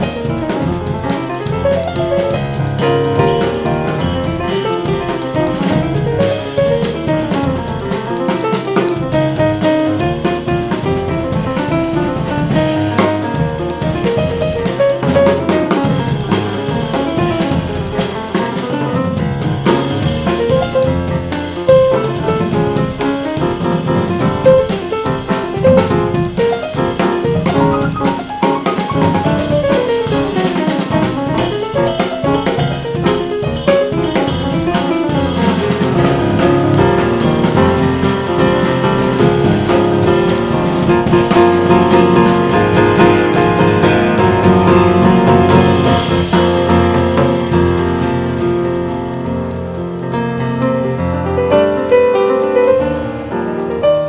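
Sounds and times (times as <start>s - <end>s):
drum kit playing: 0.0s - 54.0s
grand piano playing: 0.0s - 54.0s.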